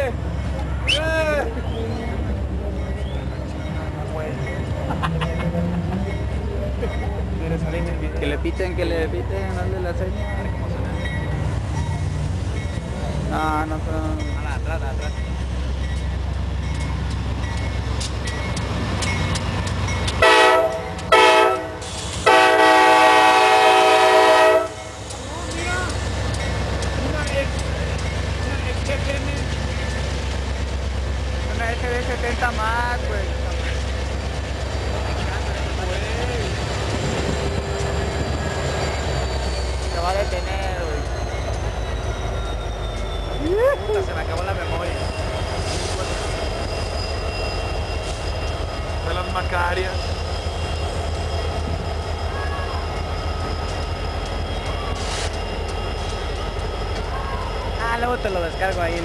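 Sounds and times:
diesel locomotives rumbling: 0.0 - 59.0
locomotive air horn blasts: 20.2 - 24.8.

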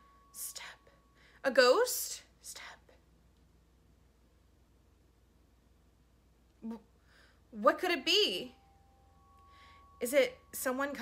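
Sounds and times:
woman whispering: 2.4 - 3.0.

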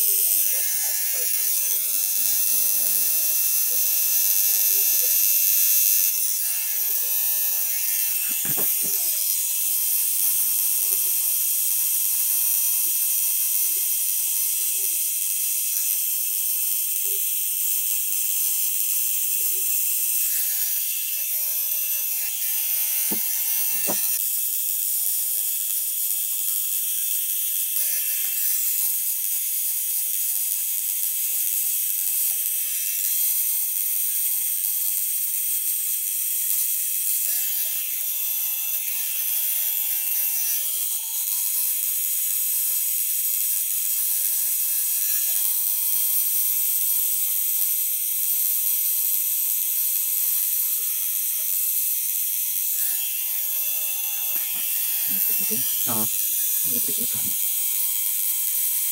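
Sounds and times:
electric tattoo machine running: 0.0 - 58.9.

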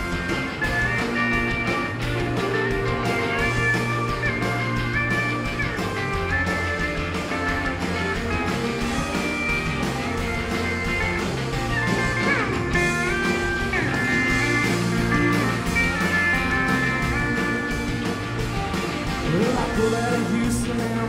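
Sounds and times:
electric guitar bending notes: 0.0 - 21.0
live rock band playing: 0.0 - 21.0.

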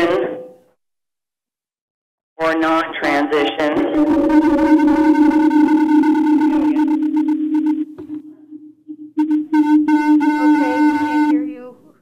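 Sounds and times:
audio feedback howl: 4.0 - 11.7.

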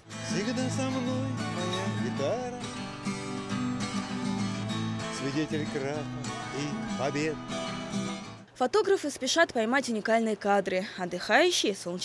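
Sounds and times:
acoustic guitar strumming chords: 0.0 - 8.5.

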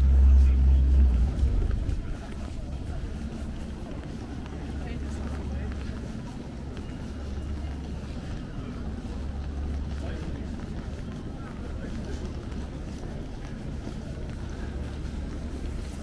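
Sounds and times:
low rumble of city noise: 0.0 - 16.0
passers-by talking: 0.0 - 16.0.

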